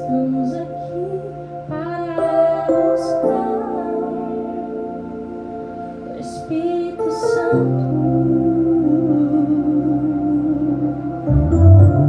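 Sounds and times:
sustained musical accompaniment: 0.0s - 12.0s.

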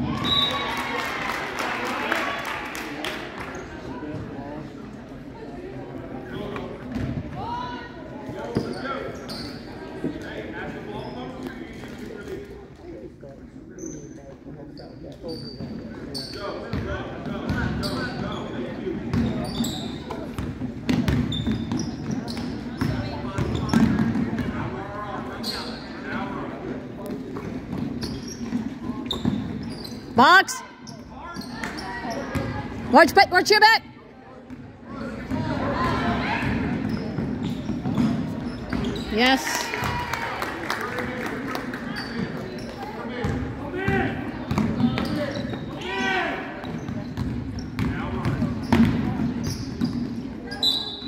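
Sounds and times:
voices echoing in hall: 0.0s - 51.0s
sneakers squeaking: 8.3s - 11.6s, 13.7s - 26.2s, 27.0s - 33.3s, 34.5s - 39.9s, 41.8s - 51.0s.

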